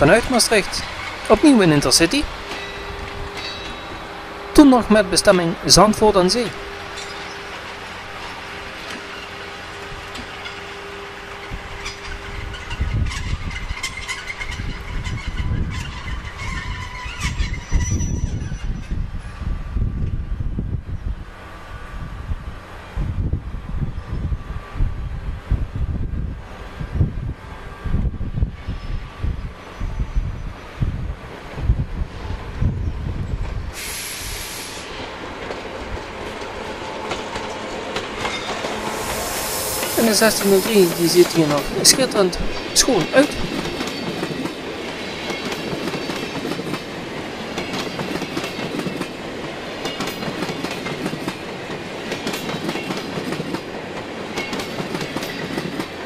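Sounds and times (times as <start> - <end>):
locomotive hiss: 33.7 - 35.2, 38.5 - 43.6.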